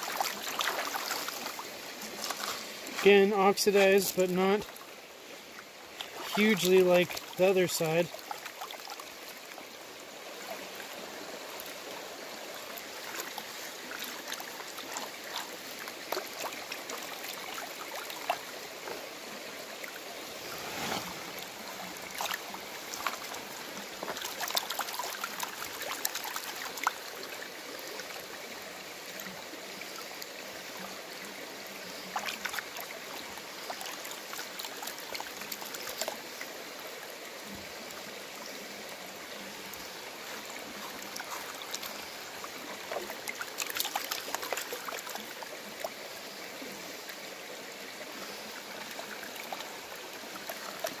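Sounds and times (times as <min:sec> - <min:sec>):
running and sloshing water: 0:00.0 - 0:51.0.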